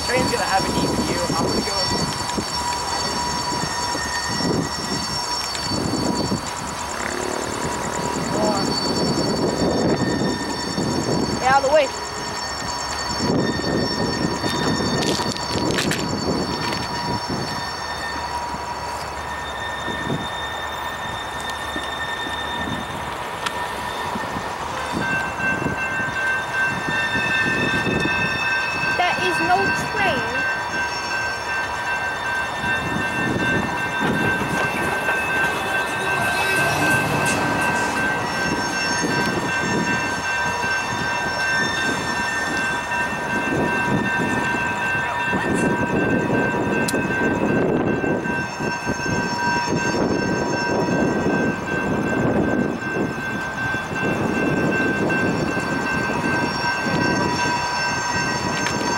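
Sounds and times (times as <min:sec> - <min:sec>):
train wheels rumbling on rail: 0:00.0 - 0:58.9
wheel-flange squeals: 0:00.0 - 0:58.9.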